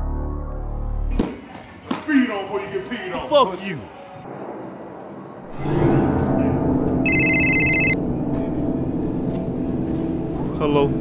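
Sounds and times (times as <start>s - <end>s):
phone ringtone: 7.1s - 8.0s.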